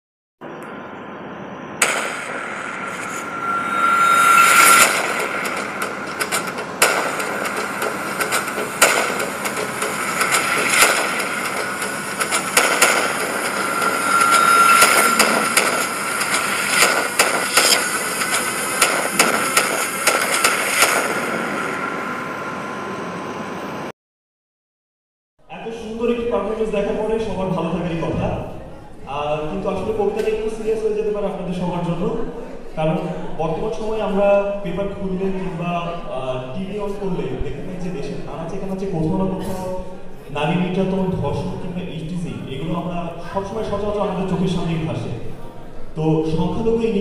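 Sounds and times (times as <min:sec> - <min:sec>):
steady hiss: 0:01.8 - 0:22.4.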